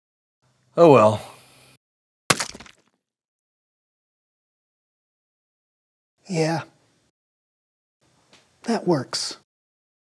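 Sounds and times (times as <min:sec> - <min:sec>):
pie splat with foil crinkle: 0:02.3 - 0:02.9.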